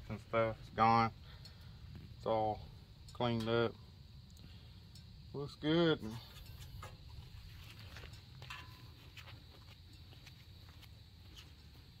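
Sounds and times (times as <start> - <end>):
low steady rumble: 0.0 - 12.0
footsteps on grass: 7.2 - 12.0.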